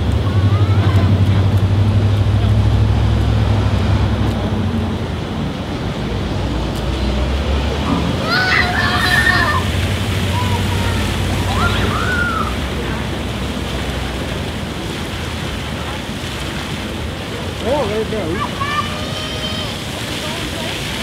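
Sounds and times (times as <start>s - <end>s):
fountain jets splashing water: 0.0s - 21.0s
children calling out: 0.2s - 1.2s, 8.0s - 12.8s, 18.3s - 20.1s.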